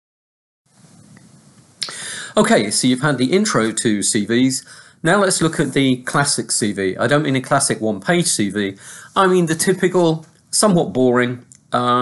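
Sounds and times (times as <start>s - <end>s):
mouth click: 1.1s - 2.0s, 11.4s - 11.7s
man inhaling: 1.8s - 2.4s, 4.6s - 5.0s, 8.8s - 9.2s.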